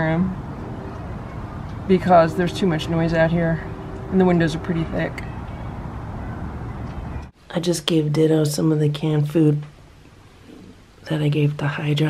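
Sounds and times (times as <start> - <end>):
distant traffic hum: 0.0 - 12.0.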